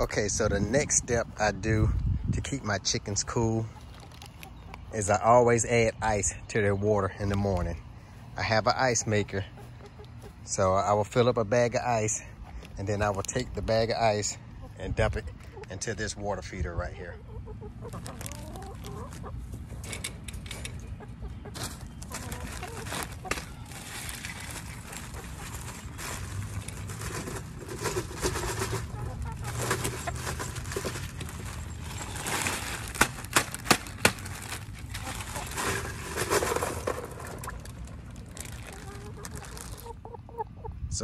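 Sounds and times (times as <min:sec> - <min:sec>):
hens clucking: 0:00.0 - 0:32.8, 0:34.8 - 0:41.0
ice bag rattling: 0:21.6 - 0:40.0
ice cubes tipped into plastic waterer: 0:34.9 - 0:39.8.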